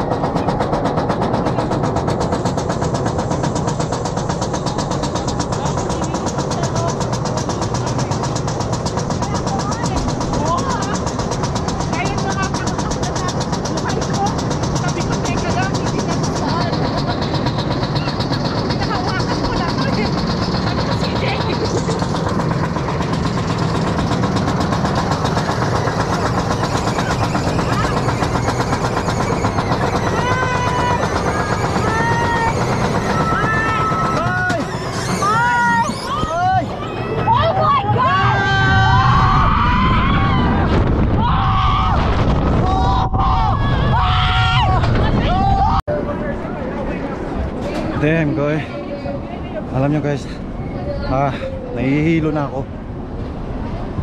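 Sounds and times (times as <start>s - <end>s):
roller coaster lift rattle: 0.0s - 54.0s.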